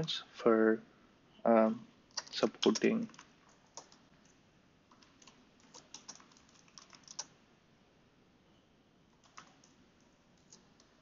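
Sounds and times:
typing on computer keyboard: 2.1s - 7.3s, 9.2s - 11.0s.

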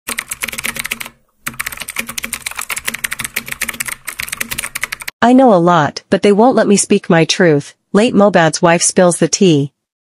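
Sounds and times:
keyboard typing: 0.1s - 5.2s.

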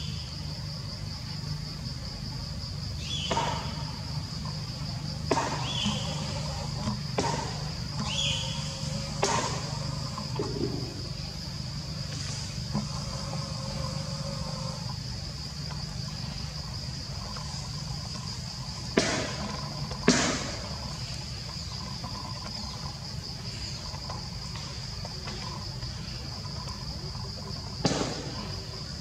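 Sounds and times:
high-pitched insect drone: 0.0s - 29.0s
sharp knocks: 18.9s - 20.8s, 27.8s - 28.5s.

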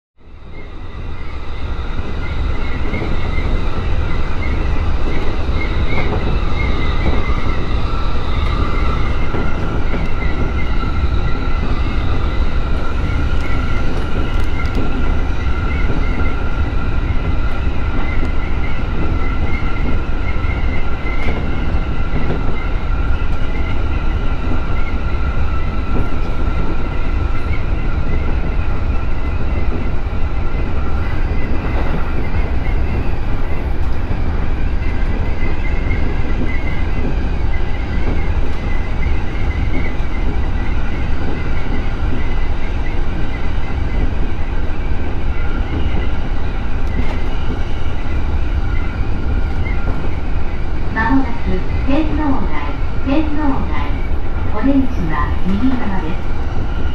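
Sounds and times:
train wheels rumbling on rails: 0.2s - 56.9s.

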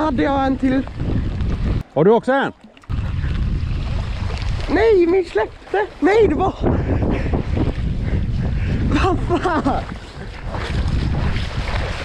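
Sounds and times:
wind buffeting microphone: 0.0s - 1.9s, 2.8s - 12.0s.

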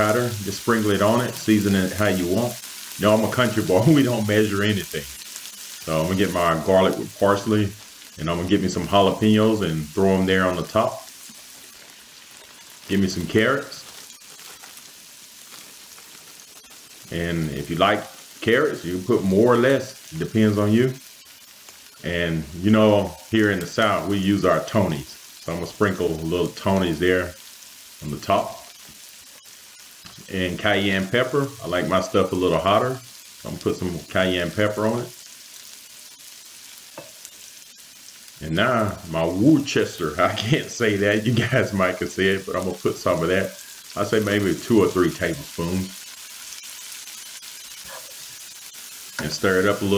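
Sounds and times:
cabbage sizzling in a skillet: 0.0s - 49.9s
faint crackles: 0.0s - 49.9s.

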